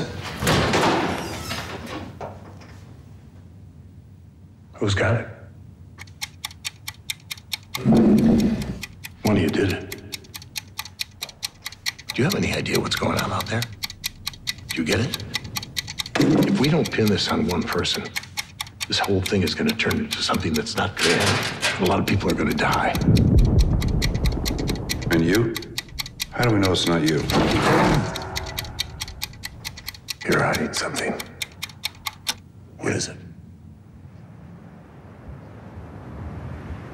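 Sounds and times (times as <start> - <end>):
rapid ticking: 6.0 - 32.4.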